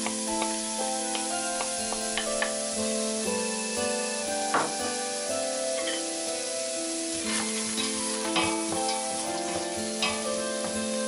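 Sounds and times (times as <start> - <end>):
background music: 0.0 - 11.0
onion sizzling in butter: 0.0 - 11.0
metal utensil scraping pot: 7.2 - 10.4.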